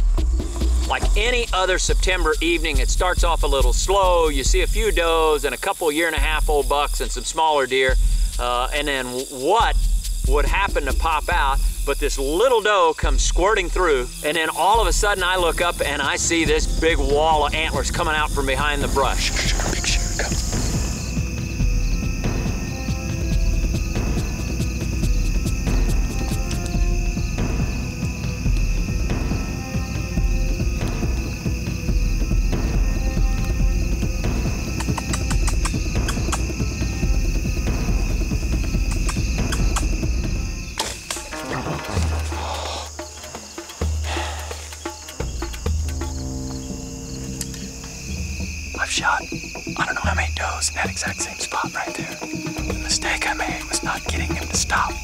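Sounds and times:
music with heavy low beat: 0.0 - 5.2, 13.0 - 46.6
high-pitched insect chorus: 0.0 - 55.0.

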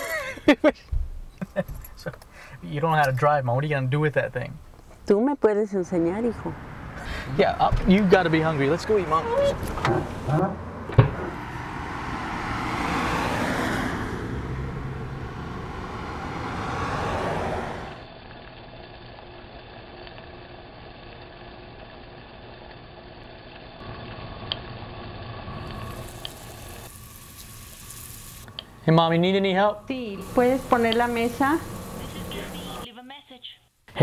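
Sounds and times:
car engine and road noise: 0.8 - 18.2, 28.4 - 32.9.

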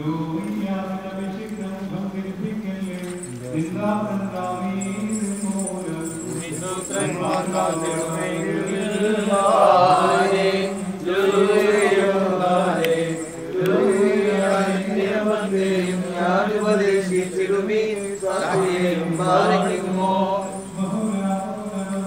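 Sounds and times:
liturgical chanting: 0.0 - 22.0.

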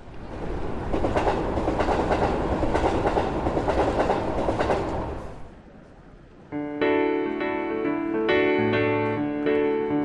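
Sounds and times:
train wheels clacking on rails: 0.3 - 5.4.

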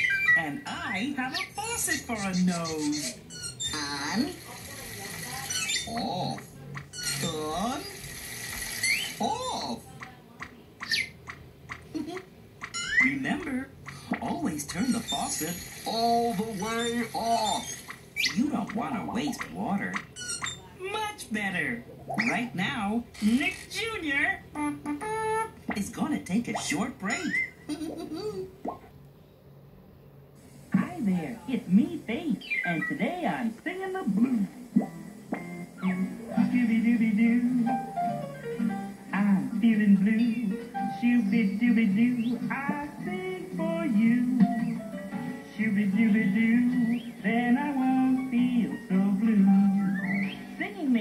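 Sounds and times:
cartoon music and sound effects: 0.0 - 0.5, 12.6 - 20.6, 27.0 - 27.7
cartoon faucet drips: 13.8 - 14.2.

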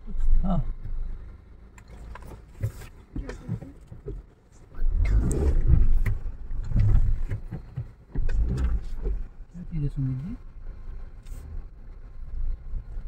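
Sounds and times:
car driving on dirt road: 0.0 - 13.0
low road rumble: 0.0 - 13.0.

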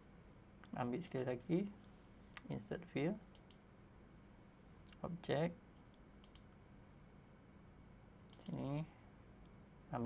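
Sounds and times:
computer mouse clicks: 1.0 - 1.4, 3.3 - 3.6, 5.9 - 6.5, 8.3 - 8.6.

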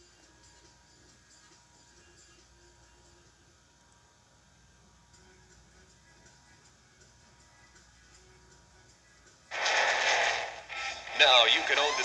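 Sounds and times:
tape hiss: 0.0 - 12.0
loud music: 9.5 - 12.0.

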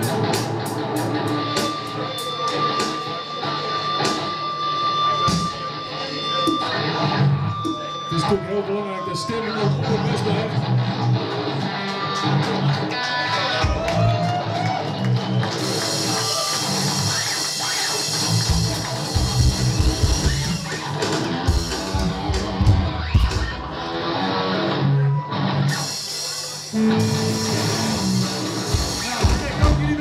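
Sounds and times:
drum kit: 0.0 - 3.2, 5.2 - 5.6, 14.8 - 23.8, 25.7 - 30.0
bass guitar: 0.0 - 4.3, 9.5 - 30.0
distorted electric guitar: 0.0 - 30.0.

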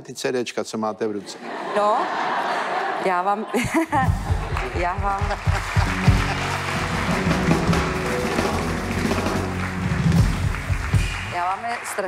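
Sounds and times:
band playing instrumental: 4.0 - 11.8.

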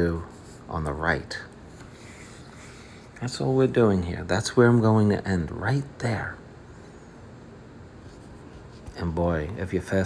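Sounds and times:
faint steady rustle: 0.0 - 10.0.

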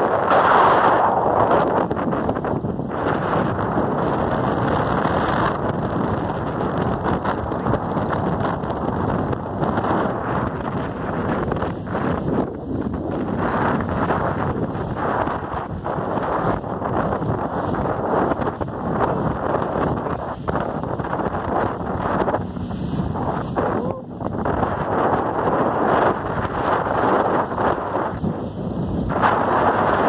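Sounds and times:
motorboat running on water: 0.0 - 30.0
wind buffeting microphone: 0.0 - 30.0.

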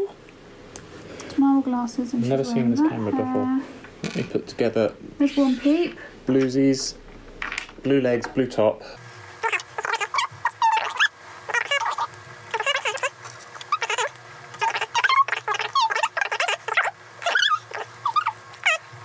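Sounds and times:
sped-up high-pitched chatter: 9.4 - 18.8.

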